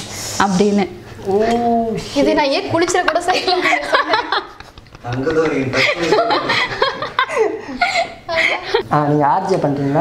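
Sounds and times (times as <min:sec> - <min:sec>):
people laughing together: 0:03.3 - 0:08.8.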